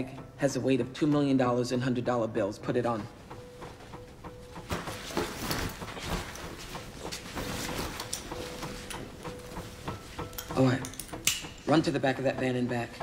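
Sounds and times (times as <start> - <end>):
bag straps clicking and knocking: 3.6 - 11.9
bag rustling: 4.7 - 8.9.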